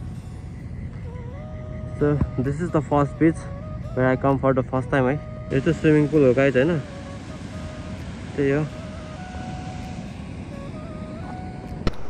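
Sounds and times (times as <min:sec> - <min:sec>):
faint held tones: 0:00.0 - 0:12.0
rushing outdoor background noise: 0:00.0 - 0:12.0.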